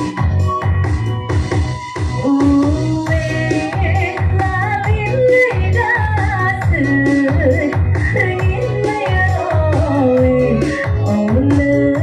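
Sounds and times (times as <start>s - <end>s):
electronic keyboard with steady beat: 0.0s - 12.0s
woman singing into microphone: 2.2s - 12.0s.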